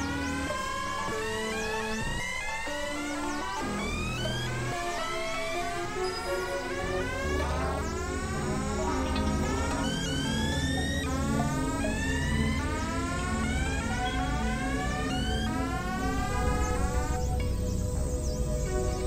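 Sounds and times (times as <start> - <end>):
low pulsing drone: 0.0 - 19.0
siren-like synth pitch sweeps: 0.0 - 19.0.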